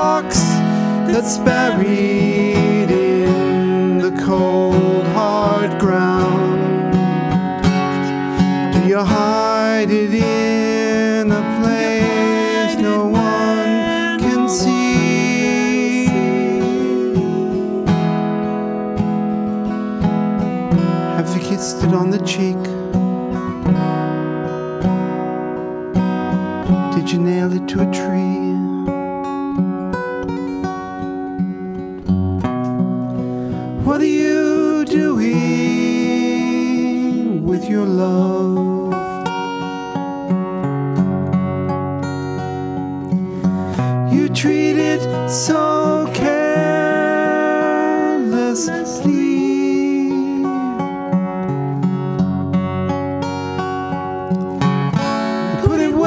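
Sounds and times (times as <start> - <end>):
acoustic guitar strumming: 0.0 - 56.0
pitch-bending melody line: 10.7 - 19.6.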